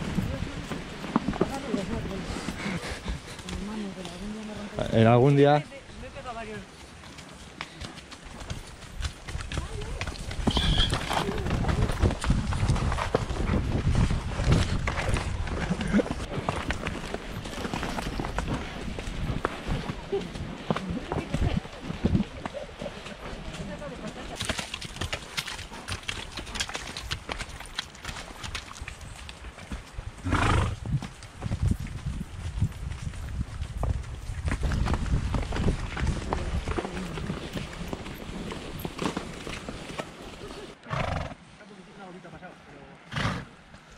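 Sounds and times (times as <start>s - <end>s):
horse hooves on stony trail: 0.0s - 41.3s.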